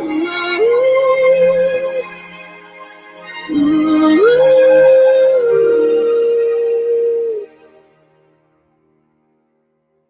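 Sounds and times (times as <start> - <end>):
song with long held note: 0.0 - 9.6.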